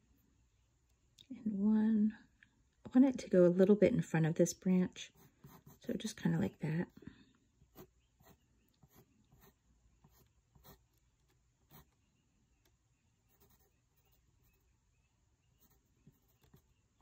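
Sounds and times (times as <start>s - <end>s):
pencil sketching on paper: 5.0s - 5.9s, 7.7s - 11.0s, 13.3s - 14.6s.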